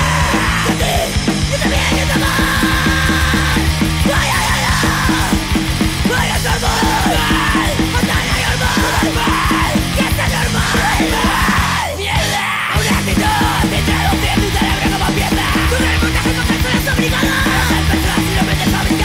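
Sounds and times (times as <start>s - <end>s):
distorted electric guitars: 0.0s - 19.0s
fast drumming: 0.0s - 19.0s
yelled vocals: 0.0s - 19.0s.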